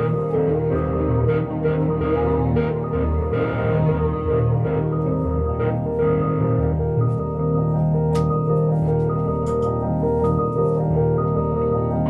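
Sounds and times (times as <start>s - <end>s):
low bass tone: 0.0s - 10.2s
electric guitar: 0.0s - 12.0s
electric piano: 0.0s - 12.0s.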